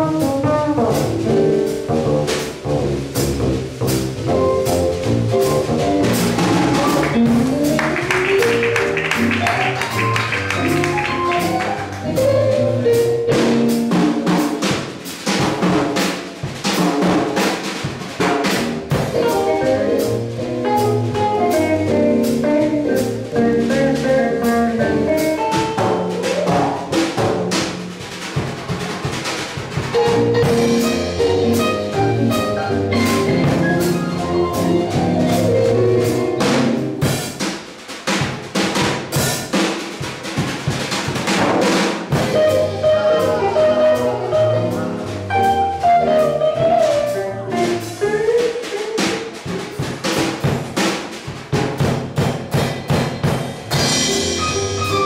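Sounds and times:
jazz band playing: 0:00.0 - 0:55.0
jazz drum solo: 0:00.0 - 0:55.0.

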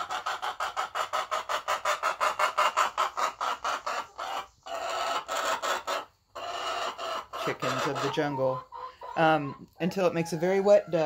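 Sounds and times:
hens clucking: 0:00.0 - 0:11.0.

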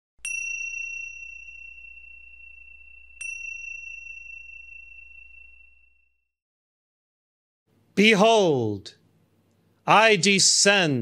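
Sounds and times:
high clear chime: 0:00.2 - 0:06.2.

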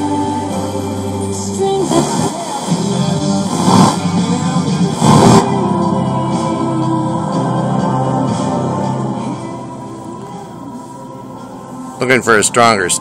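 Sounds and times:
radio music: 0:00.6 - 0:07.8, 0:08.4 - 0:13.0
radio tuning hiss: 0:01.8 - 0:04.1, 0:04.9 - 0:05.5.

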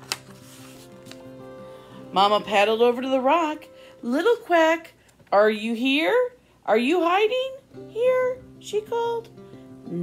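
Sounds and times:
page turning snap: 0:00.0 - 0:01.3
quiet background music: 0:00.0 - 0:10.0.

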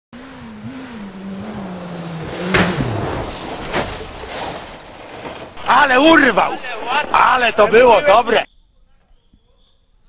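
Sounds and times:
rally car engine running hard: 0:00.2 - 0:04.9
car crash: 0:00.4 - 0:07.3
sharp knock: 0:02.4 - 0:03.9.

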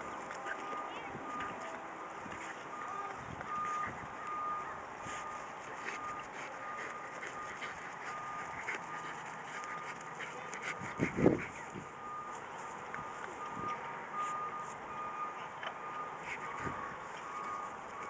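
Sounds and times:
faint high beeps: 0:00.0 - 0:01.9, 0:02.6 - 0:10.1, 0:11.6 - 0:18.0
dog paws scraping dirt: 0:00.0 - 0:14.8.

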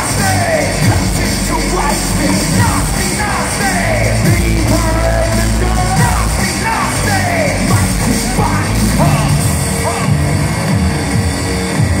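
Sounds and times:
heavy bass synth sliding: 0:00.0 - 0:12.0
loud electronic music: 0:00.0 - 0:12.0.

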